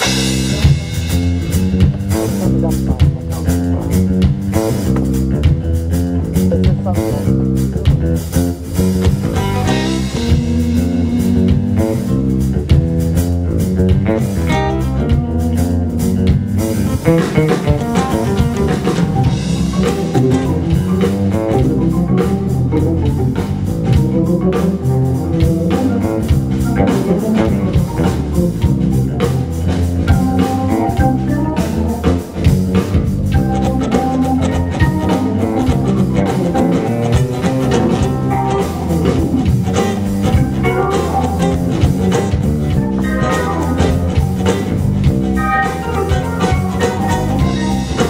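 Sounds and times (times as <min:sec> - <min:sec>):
bass guitar: 0:00.0 - 0:48.0
drum kit: 0:00.0 - 0:48.0
electric guitar: 0:00.0 - 0:48.0
organ-style keyboards: 0:00.0 - 0:48.0.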